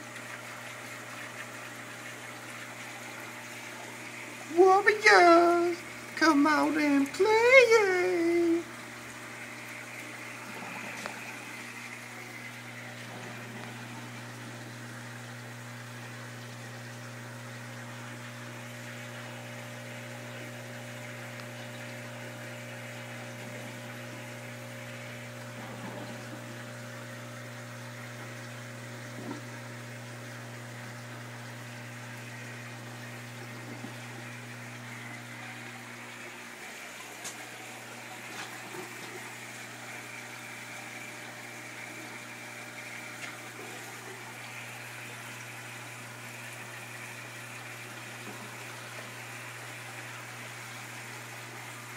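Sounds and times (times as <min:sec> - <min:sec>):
air pump humming: 0:00.0 - 0:51.9
sponge filter bubbling: 0:00.0 - 0:51.9.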